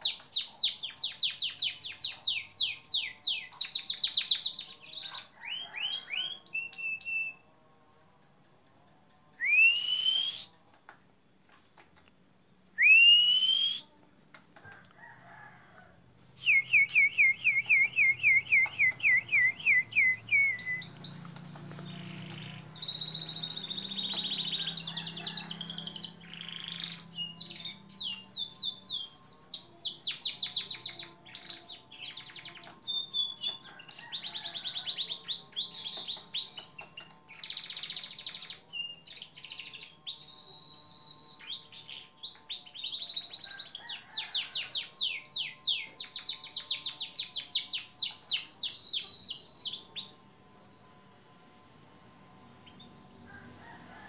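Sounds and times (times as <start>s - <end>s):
canary singing trills: 0.0s - 7.5s, 15.0s - 50.8s.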